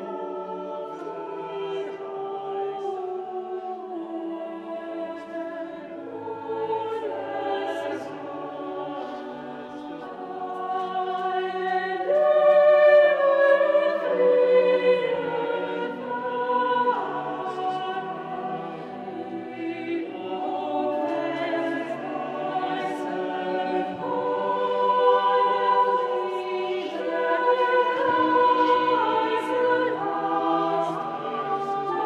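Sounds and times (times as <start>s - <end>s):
choir singing sustained chords: 0.0s - 32.0s.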